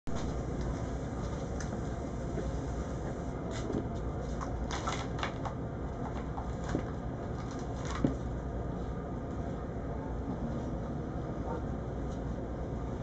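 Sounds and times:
low room hum: 0:00.1 - 0:13.0.

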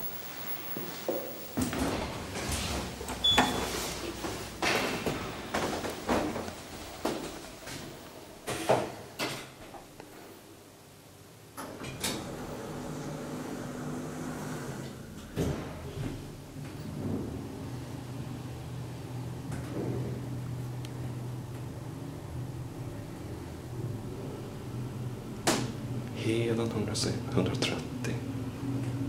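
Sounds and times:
elevator doors sliding and clunking: 0:00.0 - 0:09.8, 0:11.6 - 0:24.2.

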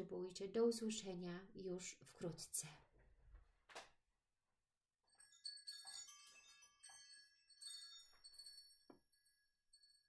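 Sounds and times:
tinkling chimes: 0:05.0 - 0:10.0.

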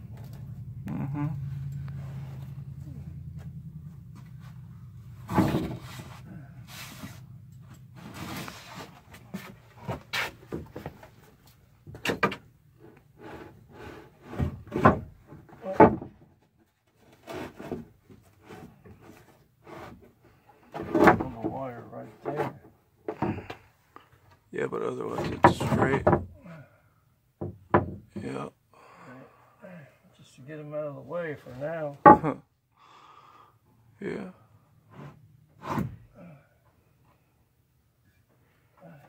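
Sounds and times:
steady low hum: 0:00.0 - 0:08.2
wooden boards knocking and scraping: 0:05.2 - 0:06.1, 0:13.2 - 0:16.3, 0:17.0 - 0:20.0, 0:20.7 - 0:21.6, 0:22.2 - 0:23.6, 0:25.1 - 0:26.4, 0:27.4 - 0:28.3, 0:32.0 - 0:32.3.

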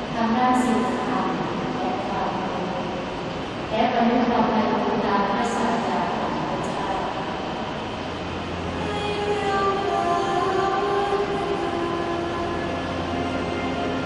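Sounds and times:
low sustained bass note: 0:08.2 - 0:14.0.

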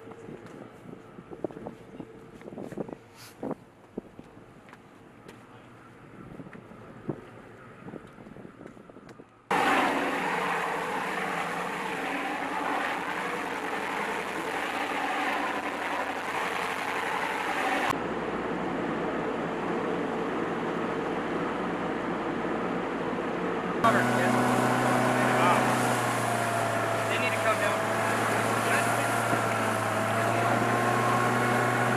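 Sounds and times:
wind on microphone: 0:00.0 - 0:04.5, 0:06.0 - 0:09.3, 0:25.3 - 0:31.9
boat engine drone: 0:09.5 - 0:31.9.

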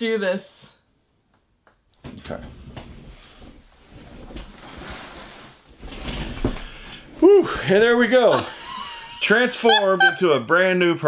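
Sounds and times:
wig rustling on head: 0:03.0 - 0:07.2.

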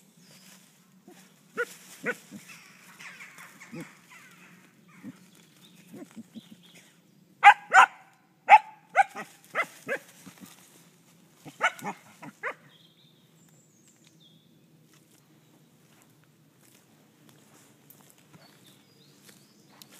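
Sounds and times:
dog barking high: 0:07.4 - 0:10.1, 0:11.5 - 0:12.6.

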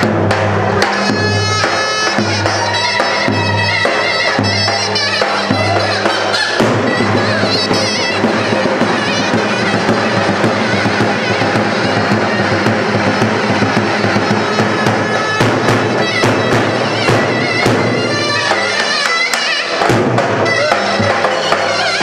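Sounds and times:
drum beats: 0:00.0 - 0:22.0
shrill shawm dance tune: 0:00.0 - 0:22.0.

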